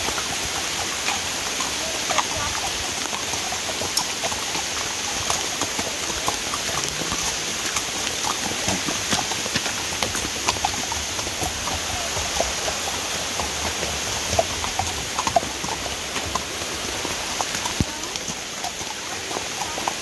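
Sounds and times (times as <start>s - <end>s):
heavy rain on foliage: 0.0s - 20.0s
hooves clopping on mud: 0.0s - 20.0s.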